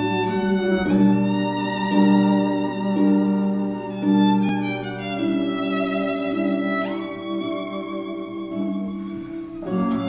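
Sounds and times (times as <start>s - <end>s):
bowed viola: 0.0s - 10.0s.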